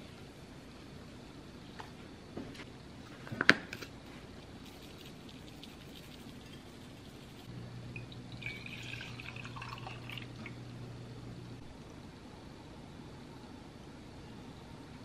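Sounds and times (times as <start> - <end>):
low steady hum: 0.0 - 15.0
spice shaker ticks: 4.6 - 7.5
milk pouring into a glass mug: 8.0 - 10.6.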